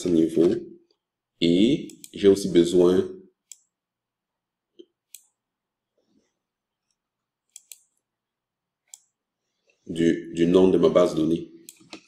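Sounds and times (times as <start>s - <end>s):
computer mouse clicks: 1.9s - 2.2s, 3.5s - 3.7s, 4.8s - 5.4s, 6.8s - 8.0s, 8.9s - 9.2s, 11.6s - 12.0s.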